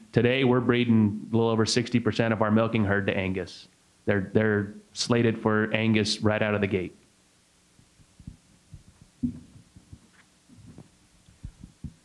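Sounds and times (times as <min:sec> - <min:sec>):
faint electrical hum: 0:00.0 - 0:12.0
microphone handling bumps: 0:07.8 - 0:12.0.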